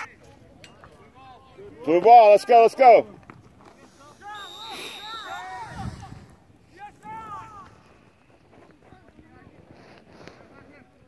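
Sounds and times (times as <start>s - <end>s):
distant players shouting: 0.8s - 8.0s.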